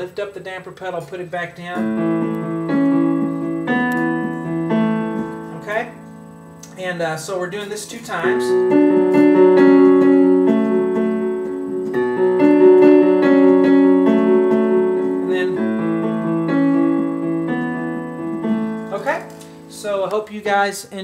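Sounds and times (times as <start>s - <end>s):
man speaking: 0.0s - 2.0s, 5.5s - 6.0s, 6.7s - 8.6s, 15.3s - 15.7s, 18.9s - 21.0s
piano playing held notes: 1.6s - 21.0s.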